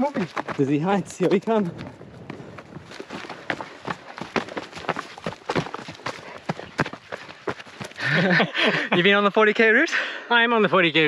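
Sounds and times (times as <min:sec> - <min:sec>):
footsteps on stony dirt path: 0:00.0 - 0:09.4.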